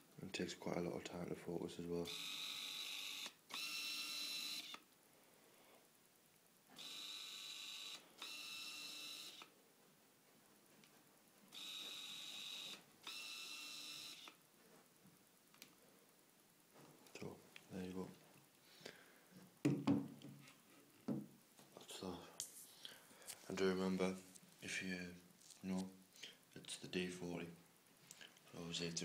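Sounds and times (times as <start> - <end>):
autofocus lens motor whirring: 2.1 - 4.8, 6.8 - 9.5, 11.5 - 14.4.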